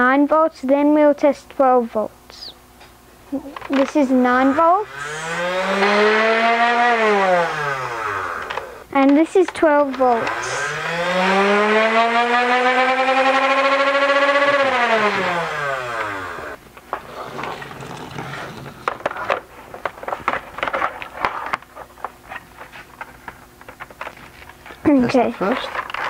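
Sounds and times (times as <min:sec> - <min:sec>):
flywheel motors whining: 0:03.4 - 0:19.4.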